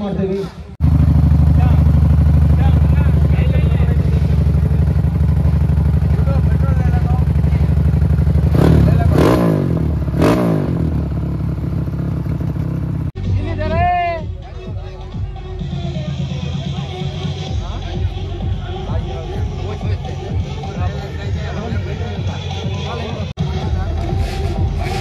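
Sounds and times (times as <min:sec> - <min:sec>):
dirt bike engine idling and revving: 0:00.6 - 0:25.0.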